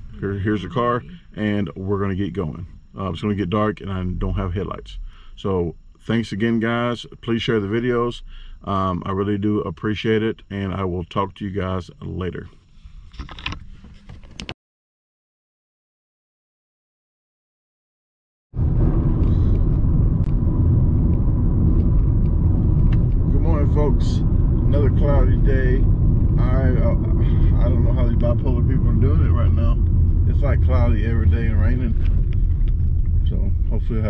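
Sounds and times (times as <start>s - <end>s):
car road and engine rumble: 0.0s - 8.7s, 12.6s - 14.4s, 18.6s - 34.0s
indistinct voices: 23.2s - 32.2s.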